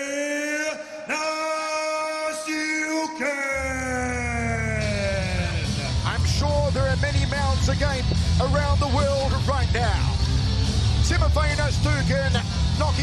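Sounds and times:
ring announcer shouting: 0.0s - 10.2s, 11.0s - 13.0s
music with heavy pulsing bass: 4.3s - 13.0s.

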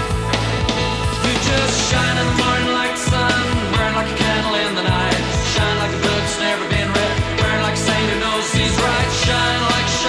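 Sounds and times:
rock band instrumental: 0.0s - 10.0s
steady drum beat: 0.0s - 10.0s.

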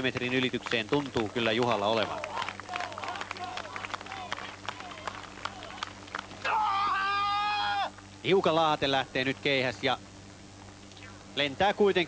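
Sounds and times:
person shouting: 6.4s - 7.9s.

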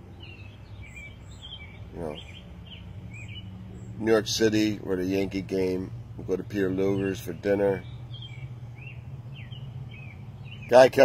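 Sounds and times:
small birds chirping: 0.0s - 11.0s
steady low hum: 0.0s - 11.0s.

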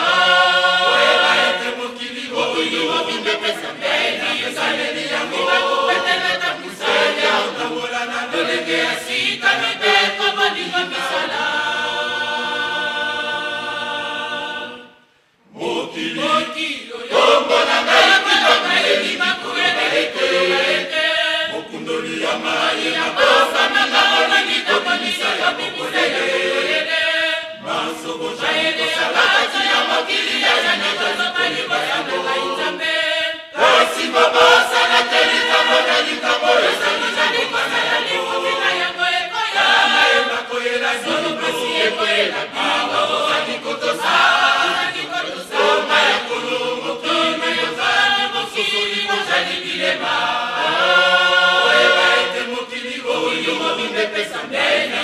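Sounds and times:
choir singing a hymn: 0.0s - 55.0s.

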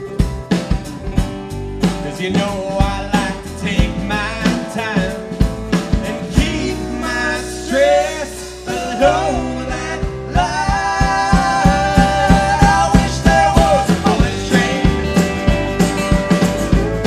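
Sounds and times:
live band playing: 0.0s - 17.0s
steady drumbeat: 0.0s - 17.0s
person singing: 2.0s - 5.3s, 5.9s - 15.7s.

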